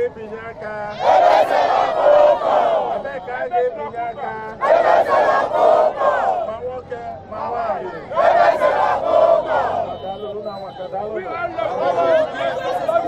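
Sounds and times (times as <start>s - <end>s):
crowd shouting: 0.9s - 3.4s, 4.5s - 6.6s, 7.7s - 10.2s, 11.2s - 13.0s.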